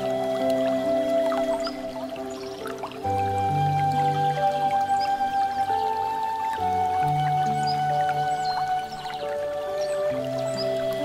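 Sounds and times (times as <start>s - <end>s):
soft piano music: 0.0s - 11.0s
water trickling and dripping: 0.0s - 11.0s.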